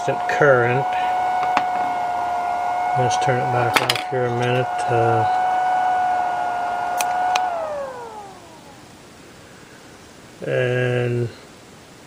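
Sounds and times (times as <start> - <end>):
cooling fan spinning down: 0.0 - 9.2
faint steady hiss: 3.1 - 12.0.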